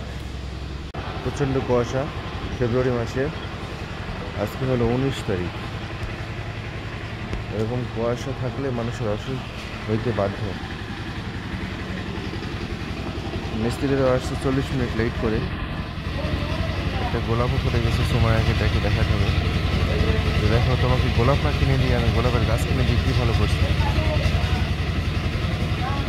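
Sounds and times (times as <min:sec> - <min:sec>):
small engine droning: 0:00.0 - 0:26.0
people talking: 0:01.2 - 0:03.4, 0:04.2 - 0:05.6, 0:07.5 - 0:10.6, 0:13.5 - 0:15.5, 0:16.1 - 0:24.8, 0:25.7 - 0:26.0.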